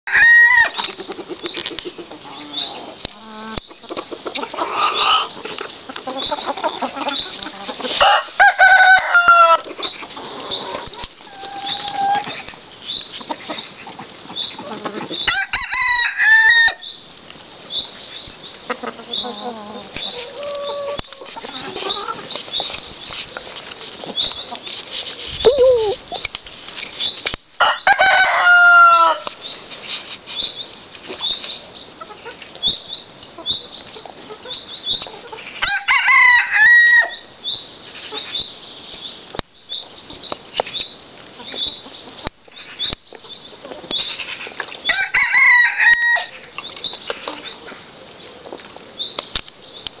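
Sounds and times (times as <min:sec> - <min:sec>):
rooster crowing: 0:00.1 - 0:00.8, 0:08.0 - 0:09.6, 0:15.3 - 0:16.8, 0:27.6 - 0:29.3, 0:35.6 - 0:37.2, 0:44.9 - 0:46.4
hens clucking: 0:00.2 - 0:15.6, 0:18.5 - 0:26.4, 0:31.0 - 0:36.7, 0:41.3 - 0:48.8.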